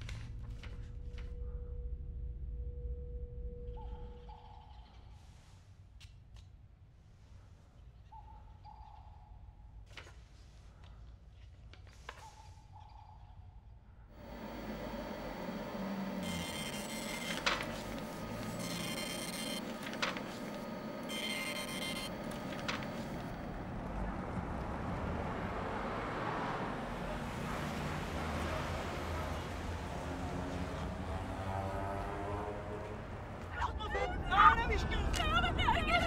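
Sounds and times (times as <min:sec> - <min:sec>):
low traffic rumble: 0:14.2 - 0:36.0.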